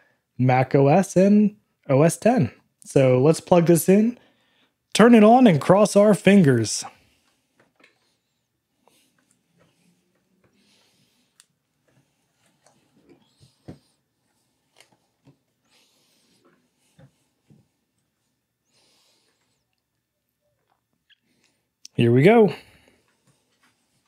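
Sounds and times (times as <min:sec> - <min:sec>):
faint slow breathing: 0:04.2 - 0:04.8, 0:06.9 - 0:19.9.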